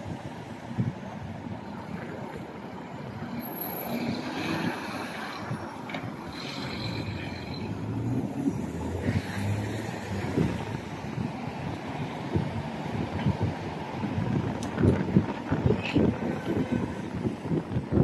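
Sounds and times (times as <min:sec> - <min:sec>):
cars driving through intersection: 0:00.0 - 0:18.0
wind noise on microphone: 0:00.0 - 0:18.0.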